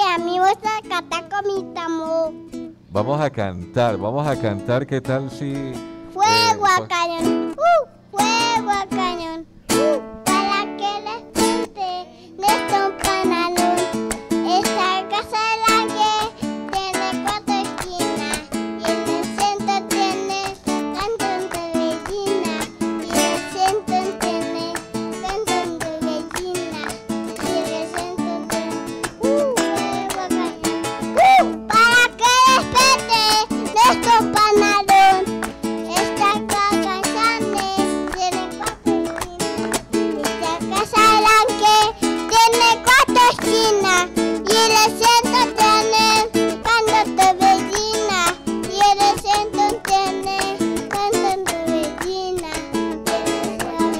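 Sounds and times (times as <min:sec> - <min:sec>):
boy singing into a microphone: 0:00.0 - 0:02.4, 0:06.1 - 0:53.9
acoustic guitar strumming: 0:00.0 - 0:53.9
adults clapping along: 0:46.6 - 0:53.8.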